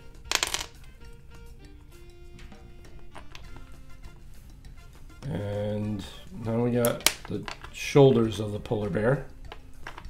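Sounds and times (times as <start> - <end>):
faint background music: 0.0 - 10.0
plastic bricks clicking: 0.3 - 0.7, 3.2 - 3.6, 6.8 - 7.8, 9.5 - 10.0.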